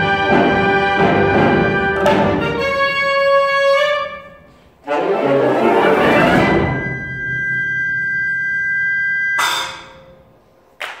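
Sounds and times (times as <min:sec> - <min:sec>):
concert band sustained note: 0:06.6 - 0:10.4.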